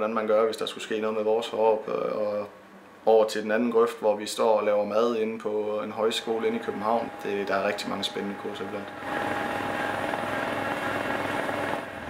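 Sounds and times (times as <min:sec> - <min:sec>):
snowblower running: 0:06.1 - 0:12.0.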